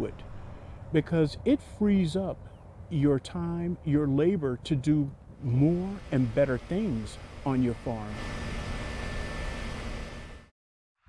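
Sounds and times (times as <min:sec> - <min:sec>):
faint high hum: 0:00.0 - 0:10.5
steady rushing noise: 0:05.4 - 0:10.4.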